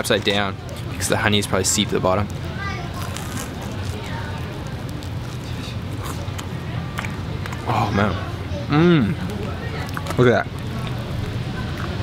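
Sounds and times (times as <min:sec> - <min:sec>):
crispy food chewing: 0:00.1 - 0:08.0, 0:09.1 - 0:12.0
faint crunches: 0:02.9 - 0:07.6.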